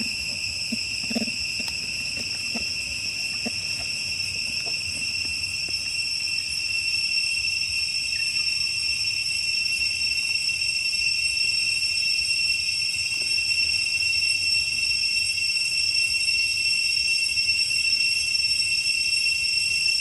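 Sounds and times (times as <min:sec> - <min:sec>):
high-pitched insect chorus: 0:00.0 - 0:20.0.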